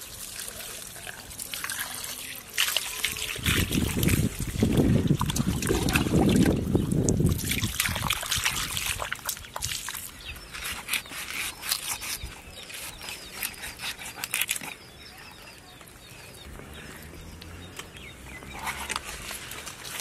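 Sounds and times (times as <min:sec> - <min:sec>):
wet squelching of fish innards: 0:00.0 - 0:14.8.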